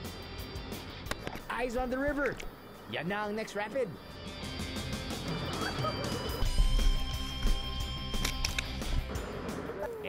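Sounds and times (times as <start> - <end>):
background music with steady beat: 0.0 - 9.9.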